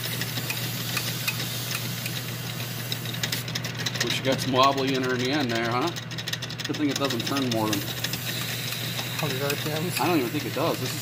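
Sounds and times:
metal lathe humming: 0.0 - 11.0
abrasive cloth polishing shaft: 7.0 - 11.0.

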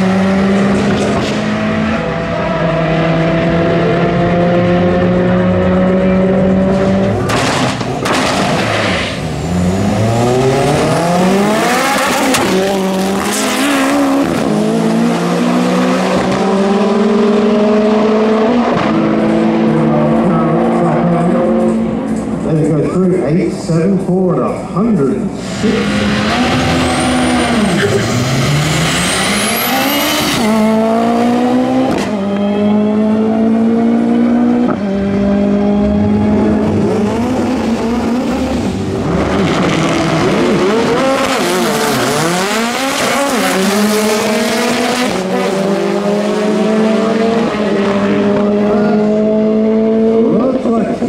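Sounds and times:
drag racing car engines accelerating: 0.0 - 51.0.

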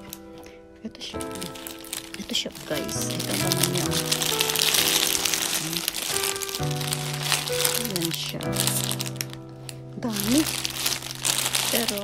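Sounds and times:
background music with held notes: 0.0 - 12.0
plastic sachets crinkling: 0.0 - 12.0.

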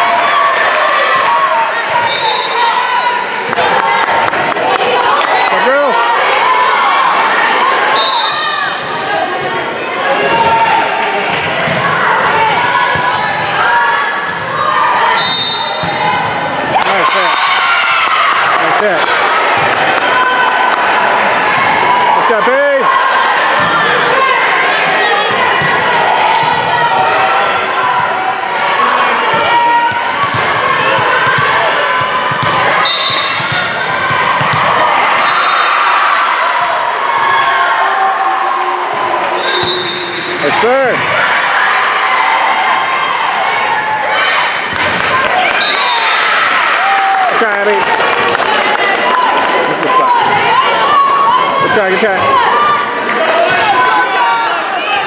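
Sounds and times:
people shouting and chattering: 0.0 - 55.0
volleyball hits: 11.2 - 18.1, 25.2 - 28.2, 29.2 - 35.2
sneaker squeaks: 15.1 - 16.7, 24.7 - 25.8, 31.2 - 31.7, 32.3 - 34.6, 39.4 - 40.4.

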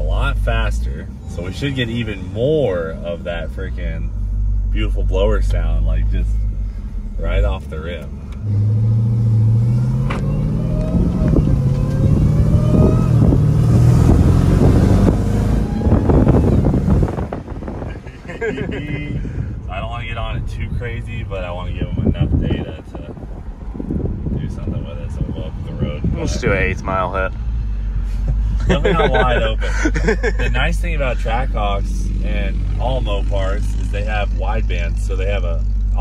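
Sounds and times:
car engine accelerating hard: 0.0 - 36.0.

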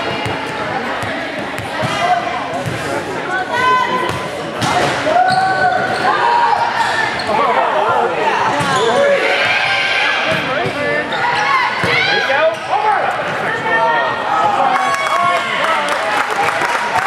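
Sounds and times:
people calling and shouting: 0.0 - 15.8.

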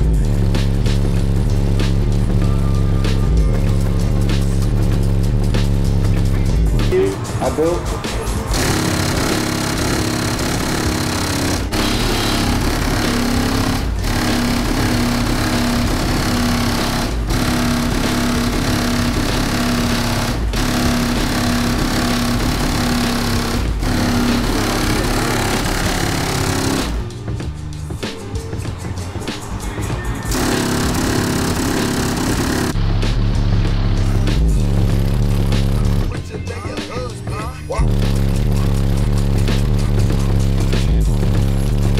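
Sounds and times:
bass-heavy music from subwoofers: 0.0 - 41.9.

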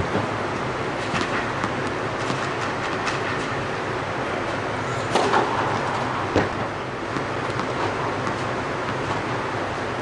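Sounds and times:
tennis ball bouncing on hard court: 1.2 - 3.2, 6.3 - 9.2.

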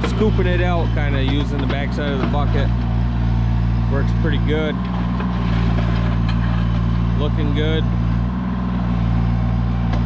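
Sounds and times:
excavator bucket digging: 0.0 - 9.1
excavator diesel engine running: 0.0 - 10.0.

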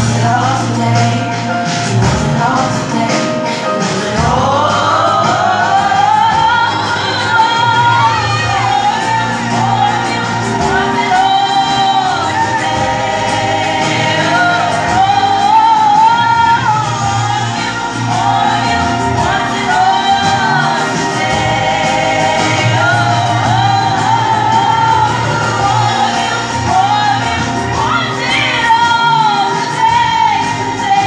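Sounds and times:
woman singing gospel: 0.0 - 31.0.

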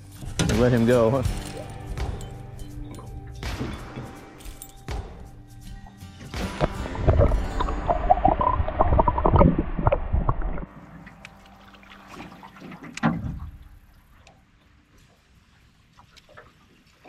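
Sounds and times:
water lapping: 5.8 - 17.0
muffled underwater rushing water: 6.5 - 17.0.

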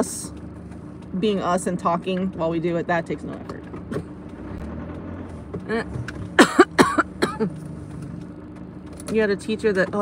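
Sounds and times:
car engine and road hum: 0.0 - 10.0
person coughing: 5.7 - 7.6.

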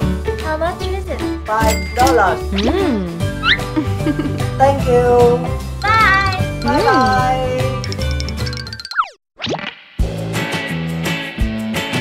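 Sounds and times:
bouncy children's music: 0.0 - 9.0.

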